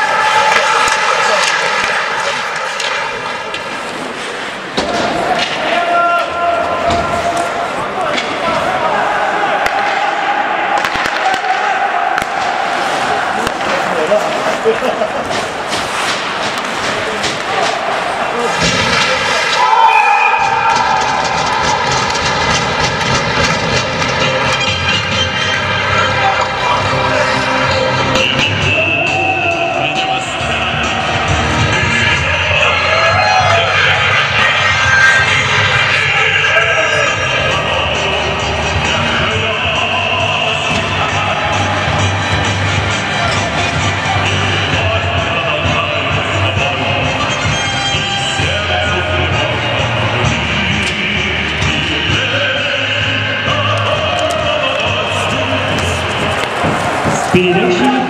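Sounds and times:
people shouting: 4.8 - 15.2, 17.0 - 23.6, 25.7 - 39.1, 53.8 - 58.0
music: 18.6 - 58.0.

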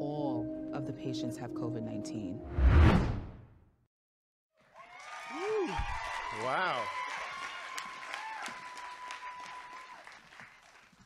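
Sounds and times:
audience applause and cheering: 4.6 - 11.0.

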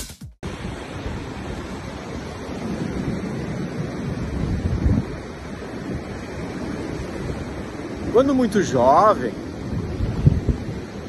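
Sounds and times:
ocean surf breaking: 0.4 - 11.0
wind buffeting microphone: 0.4 - 11.0.

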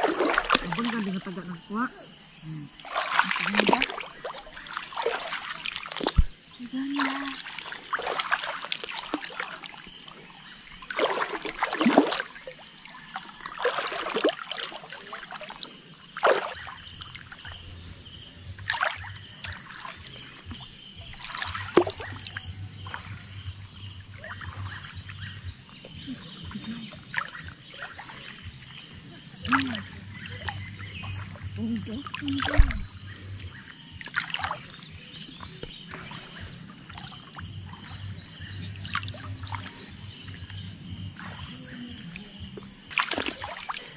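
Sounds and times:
water splashing from wading: 0.0 - 43.9.

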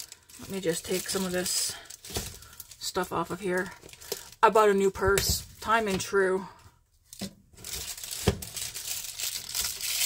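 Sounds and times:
packaging crinkling: 0.0 - 4.5, 7.1 - 10.0.

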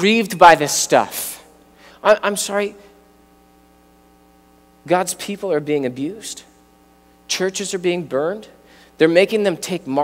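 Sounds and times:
man speaking: 0.0 - 3.0, 4.8 - 6.6, 7.3 - 10.0
faint hum of sustained tones: 0.0 - 10.0.

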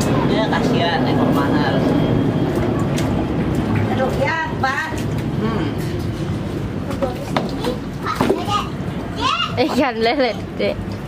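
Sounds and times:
child's high voice: 7.6 - 9.8.

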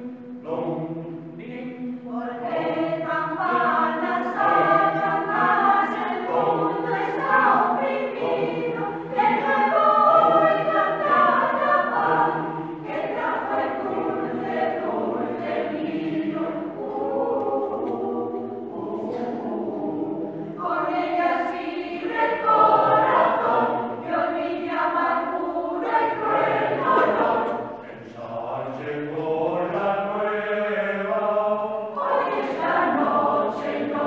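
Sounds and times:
mixed choir singing unaccompanied: 0.0 - 34.0.

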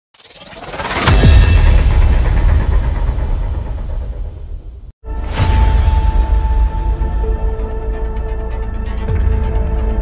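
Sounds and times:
deep cinematic boom rumble: 1.1 - 7.5.

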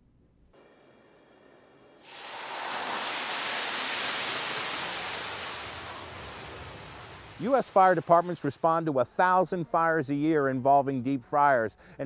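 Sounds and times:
rush of flame: 2.0 - 8.5.

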